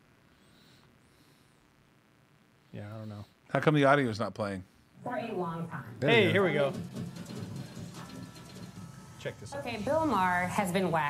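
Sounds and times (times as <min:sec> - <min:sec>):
tv news title music: 0:05.9 - 0:11.0.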